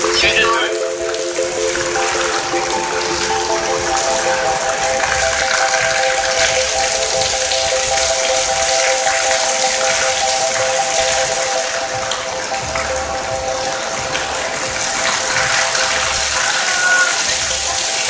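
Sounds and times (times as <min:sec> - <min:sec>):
fountain water splashing: 0:00.0 - 0:18.0
music of long held chords: 0:00.0 - 0:18.0.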